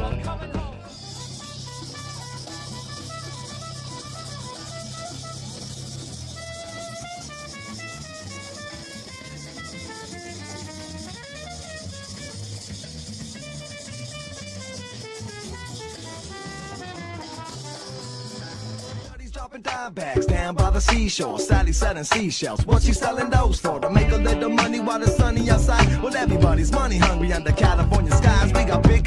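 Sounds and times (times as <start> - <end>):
drum kit: 0.0 - 9.2, 15.8 - 29.0
bass line: 0.0 - 14.4, 20.2 - 22.0, 22.6 - 29.0
trumpet and saxophone melody: 0.0 - 19.2, 22.8 - 29.0.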